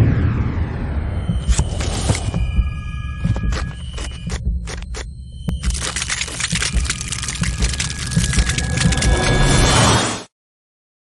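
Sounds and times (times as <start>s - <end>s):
deep throbbing hum: 0.0s - 9.8s.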